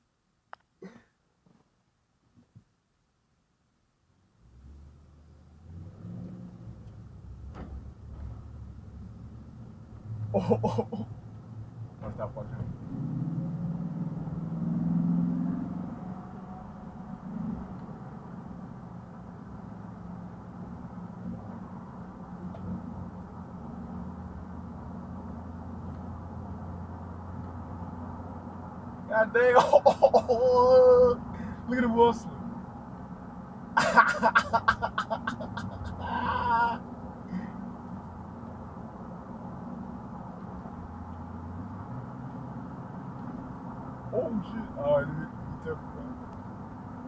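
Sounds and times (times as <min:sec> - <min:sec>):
road drone: 0:03.2 - 0:47.0
car engine accelerating: 0:04.4 - 0:47.0
car cabin hum: 0:06.8 - 0:12.8
man laughing: 0:10.4 - 0:11.1, 0:29.2 - 0:31.7, 0:33.8 - 0:36.8.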